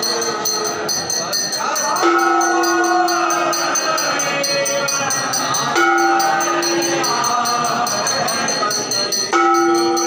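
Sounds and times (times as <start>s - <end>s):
metal bells ringing: 0.0s - 10.0s
voices singing together: 0.0s - 10.0s.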